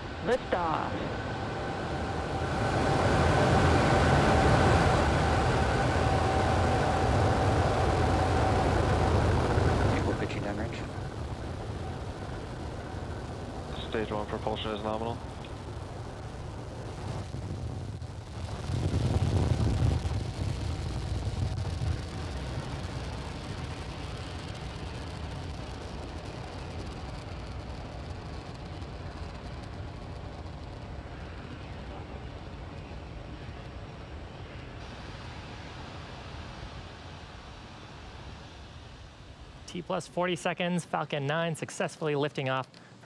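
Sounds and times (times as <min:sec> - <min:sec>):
rocket engines roaring: 0:00.0 - 0:43.0.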